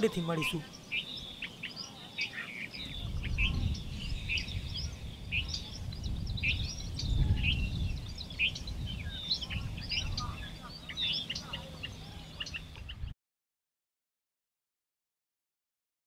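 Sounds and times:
small birds chirping: 0:00.0 - 0:13.1
wind rumble on microphone: 0:02.7 - 0:13.1.

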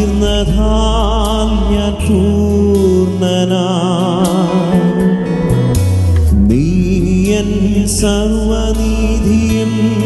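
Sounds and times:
man singing into a microphone: 0:00.0 - 0:05.5, 0:06.3 - 0:10.0
instrumental accompaniment: 0:00.0 - 0:10.0.

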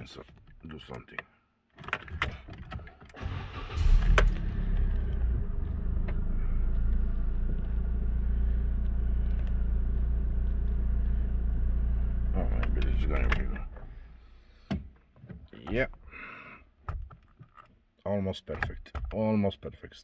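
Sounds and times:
car engine starting and idling: 0:02.1 - 0:14.3.

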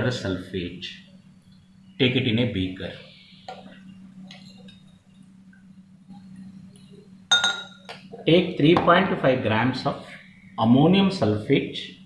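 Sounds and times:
low steady hum: 0:00.0 - 0:12.0
glassware clinking: 0:04.2 - 0:05.0, 0:07.3 - 0:08.0.

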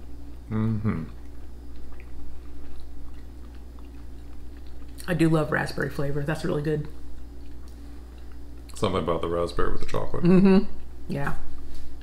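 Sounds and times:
chewing with mouth clicks: 0:00.0 - 0:09.0
steady low hum: 0:00.0 - 0:12.0.

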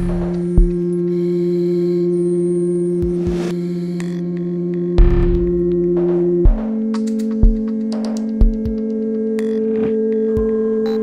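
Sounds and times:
low electronic drone: 0:00.0 - 0:11.0.

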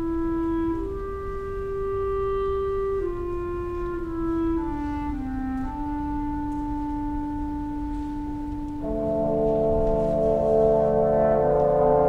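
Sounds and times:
woodwind holding long note: 0:00.0 - 0:12.0.

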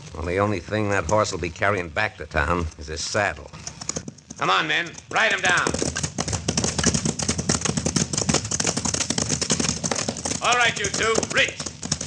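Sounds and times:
horses galloping: 0:00.0 - 0:12.0.

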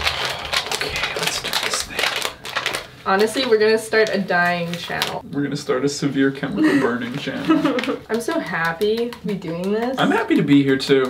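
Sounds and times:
hands rustling and clicking packaging: 0:00.0 - 0:05.2, 0:07.0 - 0:11.0.

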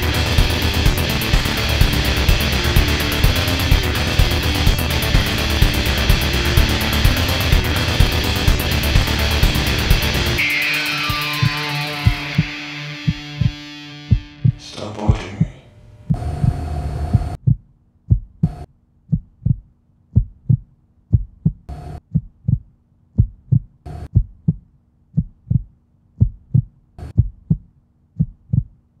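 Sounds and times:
heartbeat-like low thumps: 0:00.0 - 0:10.4, 0:11.4 - 0:24.6, 0:25.2 - 0:28.8
electronic static crackles: 0:00.0 - 0:15.4.

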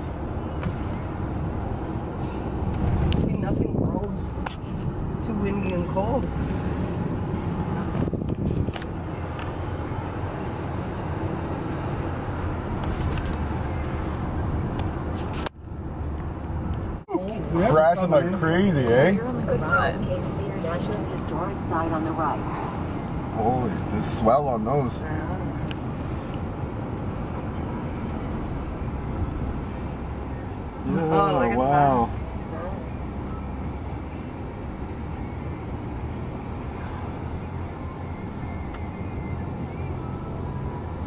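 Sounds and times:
car cabin road and engine rumble: 0:00.0 - 0:41.0.

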